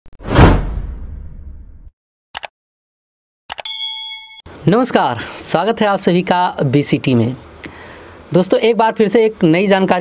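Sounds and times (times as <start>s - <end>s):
loud whoosh: 0.2s - 1.9s.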